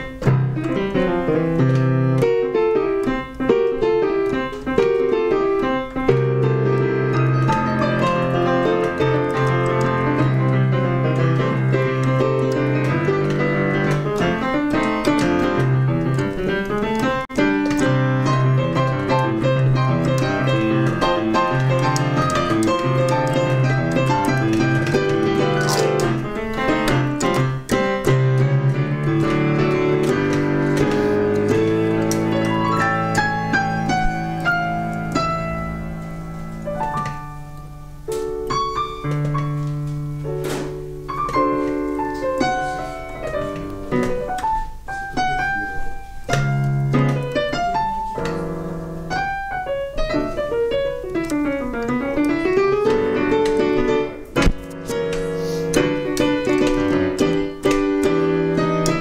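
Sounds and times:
solo piano piece: 0.0 - 59.0.

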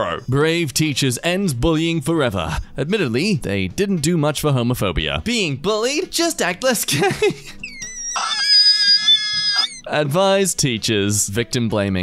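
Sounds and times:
high-pitched voice-like squeal: 7.6 - 9.8.

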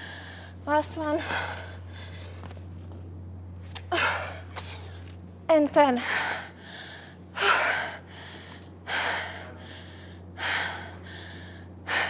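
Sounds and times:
woman breathing hard: 0.0 - 0.6, 6.0 - 12.0.

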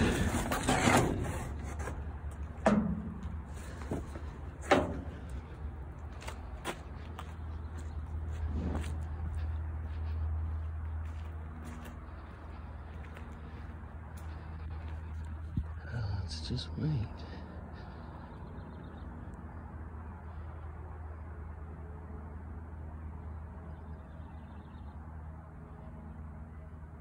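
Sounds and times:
steady low rumble: 0.0 - 27.0.

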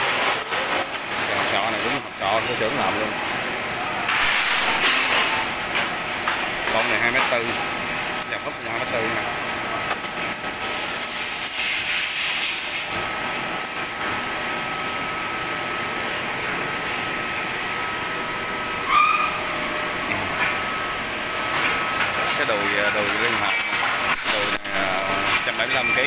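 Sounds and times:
arc welding hissing and crackling: 0.0 - 26.0
thin high whine: 18.1 - 21.1.

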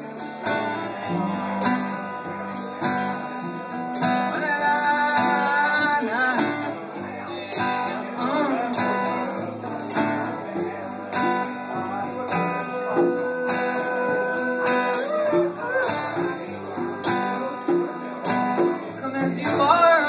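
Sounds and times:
acoustic guitar strumming: 0.0 - 20.0
man singing: 0.0 - 20.0.

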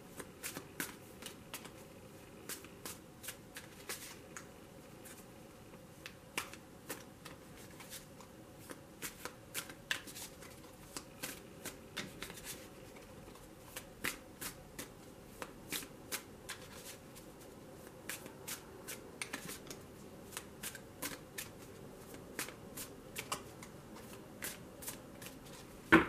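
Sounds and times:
cards being shuffled: 6.0 - 17.0.

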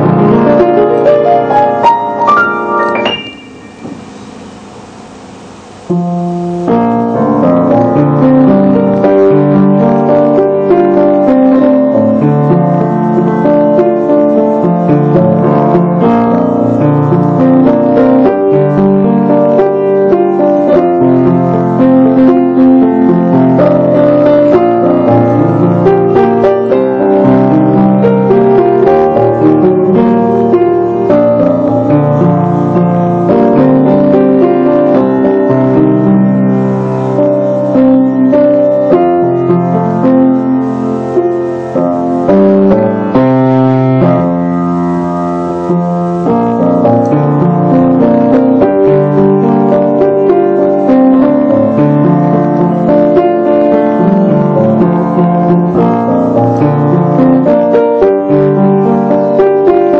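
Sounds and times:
solo piano melody: 0.0 - 59.9.

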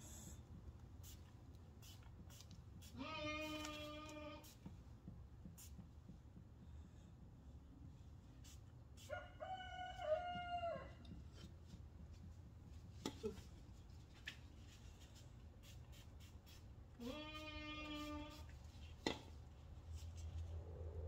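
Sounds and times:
rooster crowing: 9.0 - 11.0.

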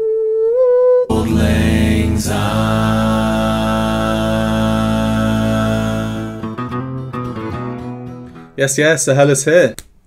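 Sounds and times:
a cappella group chord: 1.1 - 7.0.

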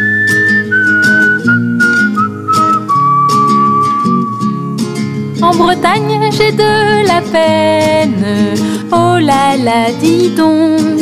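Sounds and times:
whistled melody: 0.0 - 4.8
strummed acoustic guitar: 0.0 - 11.0.

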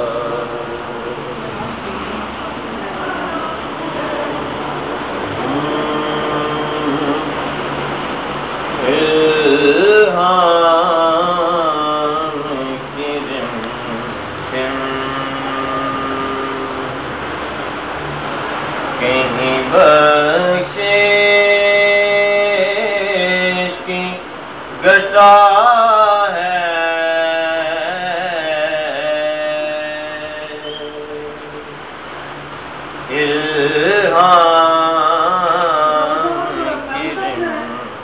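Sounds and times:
man singing a long note: 0.0 - 1.9, 5.2 - 7.5, 8.8 - 17.0, 19.0 - 31.8, 33.1 - 38.0
faint room hiss: 0.0 - 38.0
low continuous hum: 0.0 - 38.0.

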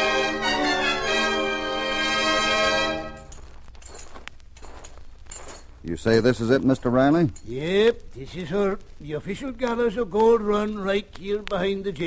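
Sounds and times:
faint background hiss: 0.0 - 12.0
man's voice: 5.9 - 12.0.

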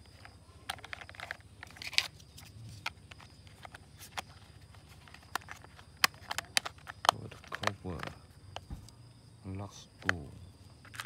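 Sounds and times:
plastic clicks and taps: 5.1 - 9.0.

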